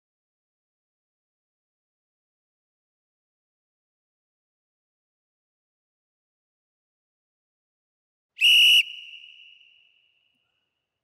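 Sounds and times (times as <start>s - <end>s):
whistle blast with ringing: 8.4s - 10.0s.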